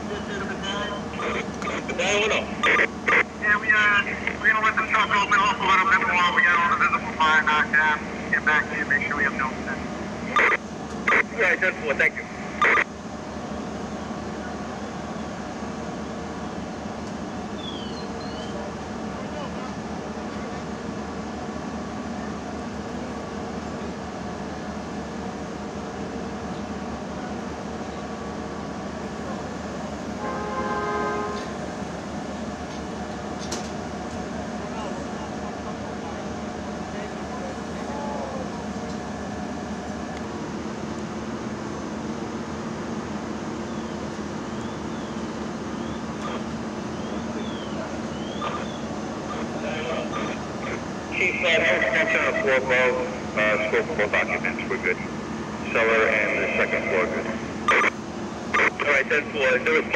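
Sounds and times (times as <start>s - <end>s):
diesel engines droning: 0.0s - 59.9s.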